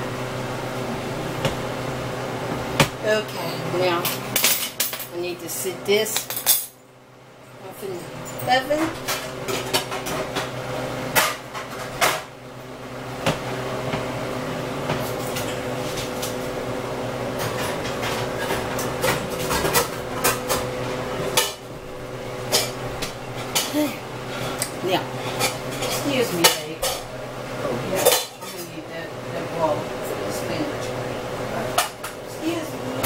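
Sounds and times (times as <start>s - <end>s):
steady hum: 0.0s - 33.0s
pans and utensils clinking: 17.4s - 20.7s, 22.4s - 24.6s, 25.2s - 27.1s, 28.0s - 28.8s.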